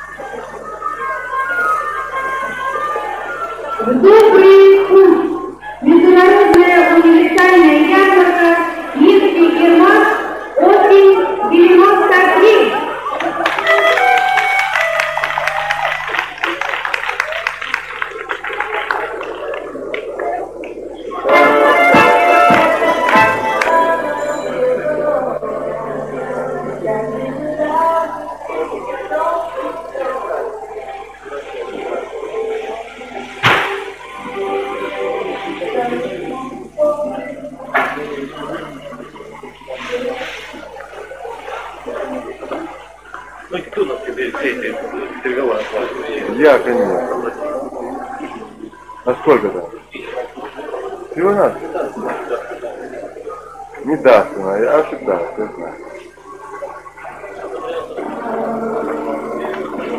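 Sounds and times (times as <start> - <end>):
indistinct background talking: 0.0 - 59.9.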